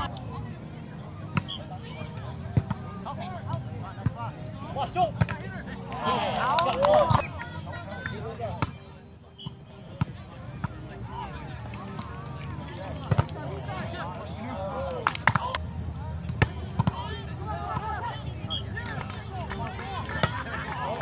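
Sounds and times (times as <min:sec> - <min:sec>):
players calling and chattering: 0:00.0 - 0:21.0
hands slapping volleyball: 0:15.0 - 0:15.6.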